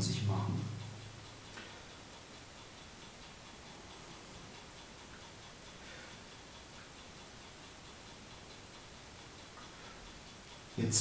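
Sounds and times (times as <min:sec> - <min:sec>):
light even ticking: 0:00.0 - 0:11.0.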